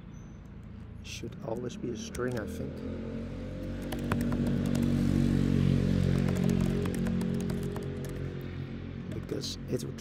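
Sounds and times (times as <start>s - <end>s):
keyboard key clicks: 3.8s - 4.9s, 6.1s - 8.2s.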